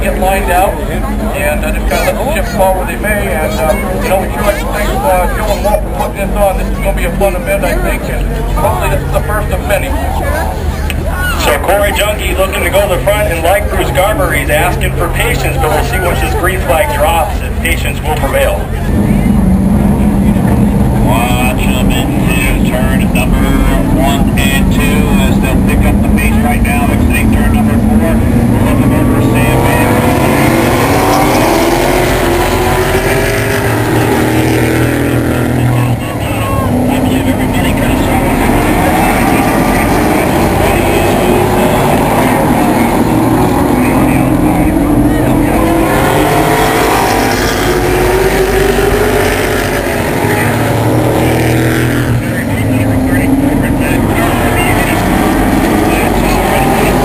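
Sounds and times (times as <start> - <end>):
race car engines roaring: 0.0 - 57.0.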